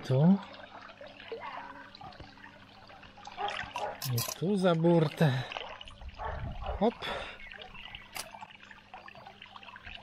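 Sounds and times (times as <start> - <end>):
pond water sloshing: 0.0 - 10.0.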